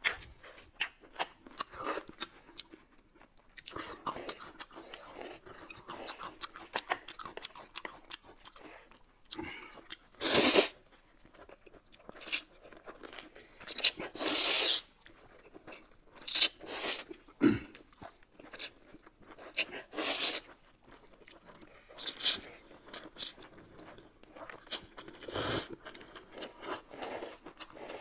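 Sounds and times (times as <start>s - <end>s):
noodles slurped and chewed: 0.0s - 28.0s.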